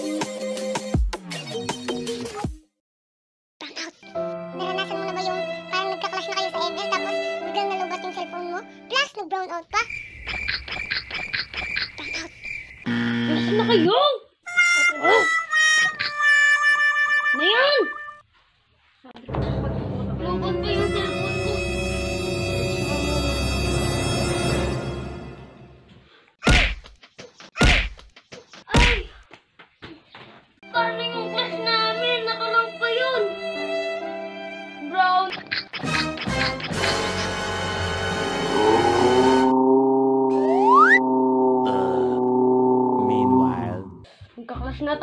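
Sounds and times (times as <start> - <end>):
low buzzer: 12.8 - 13.9, 36.9 - 39.7
held electronic tone: 37.0 - 43.7
springy boing sounds: 39.4 - 43.5.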